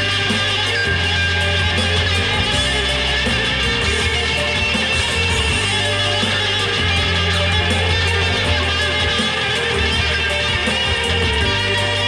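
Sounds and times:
amplified electric guitar: 0.0s - 12.0s.

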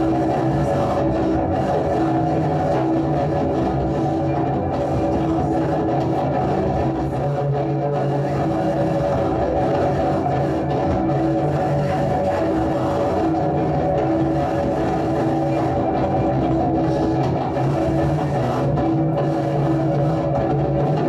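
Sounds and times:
amplified cello drone: 0.0s - 21.0s.

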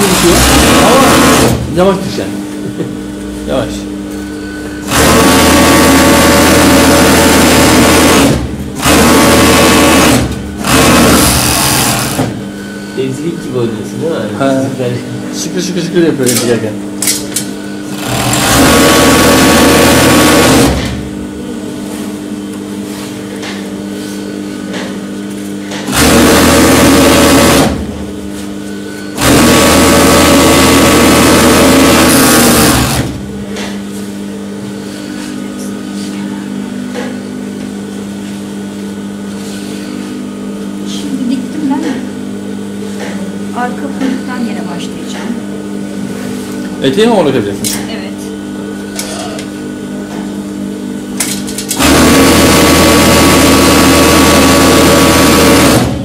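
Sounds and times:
overlock machine stitching: 0.0s - 1.7s, 4.8s - 12.4s, 17.9s - 21.0s, 25.9s - 27.8s, 29.2s - 33.2s, 51.6s - 56.0s
motor humming: 0.0s - 22.6s, 24.3s - 38.2s.

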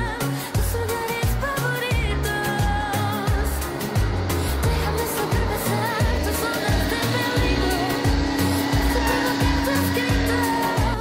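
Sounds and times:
pop music with steady beat: 0.0s - 11.0s.

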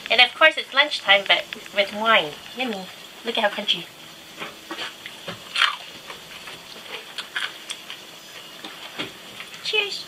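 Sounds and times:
crunchy food chewing: 4.8s - 8.0s.

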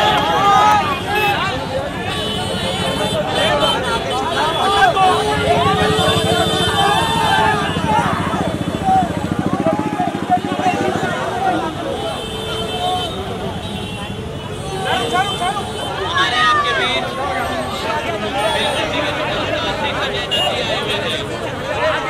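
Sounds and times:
crowd voices shouting: 0.0s - 22.0s
vehicle engine running: 4.9s - 11.8s.

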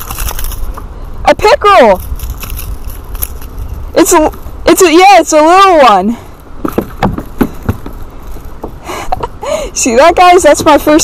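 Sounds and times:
handling crackles and clicks: 0.0s - 0.9s, 2.0s - 4.5s
wind rumble on microphone: 0.0s - 11.0s.

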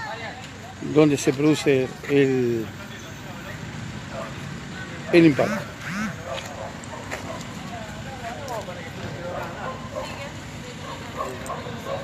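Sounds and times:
bystanders talking faintly: 0.0s - 12.0s
street and engine noise: 0.0s - 12.0s.

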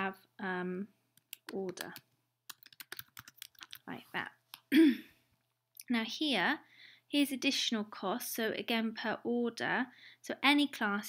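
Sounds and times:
computer keyboard typing: 1.2s - 3.9s.

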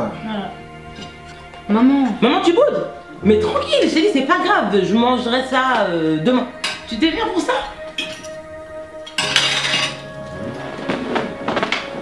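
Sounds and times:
background music with held notes: 0.0s - 12.0s
dishes and cutlery clinking: 6.6s - 7.0s, 7.8s - 8.4s, 9.1s - 11.8s.

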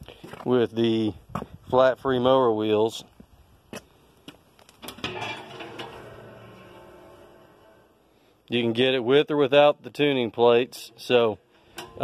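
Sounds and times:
ringing metallic door clank: 4.8s - 8.0s.

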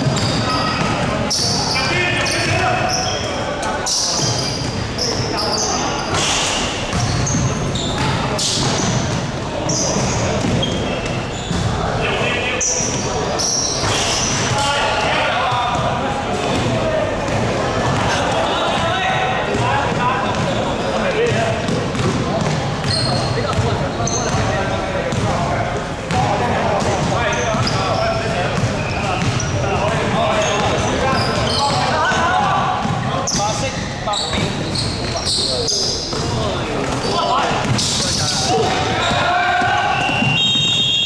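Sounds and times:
sneaker squeaks: 0.0s - 25.3s, 26.1s - 41.0s
players calling out: 0.0s - 41.0s
basketball bouncing: 6.1s - 9.3s, 10.0s - 10.8s, 21.6s - 24.5s, 28.5s - 31.5s, 32.4s - 33.1s, 37.6s - 38.0s
referee's whistle: 39.8s - 41.0s.

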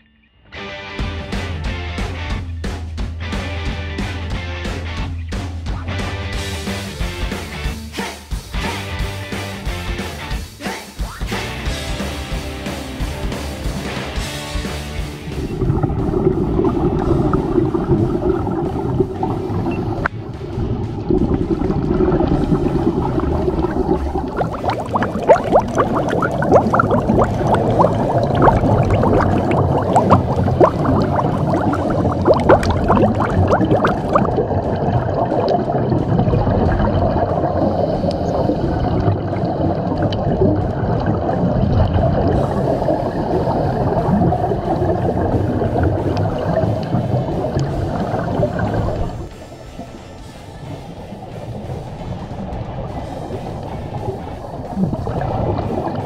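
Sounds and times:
underwater rumbling water: 13.0s - 56.0s
gurgling bubbles: 15.1s - 56.0s
dense crackling clicks: 15.4s - 56.0s.

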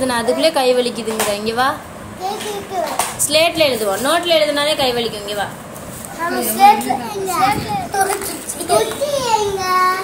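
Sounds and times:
young child talking: 2.2s - 3.2s, 6.2s - 10.0s.

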